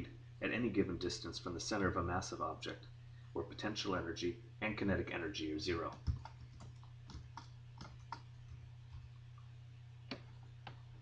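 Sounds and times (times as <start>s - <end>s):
low electrical hum: 0.0s - 11.0s
computer keyboard clicks: 5.9s - 9.1s.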